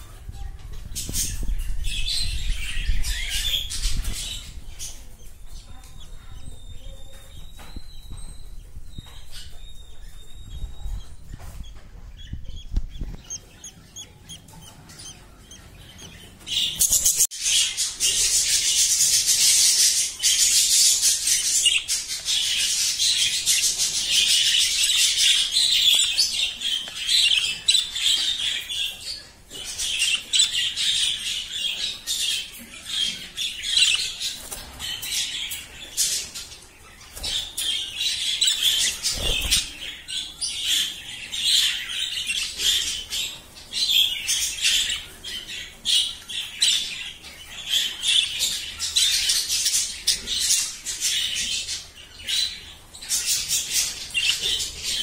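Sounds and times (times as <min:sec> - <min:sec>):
budgerigars chirping: 0:01.1 - 0:55.0.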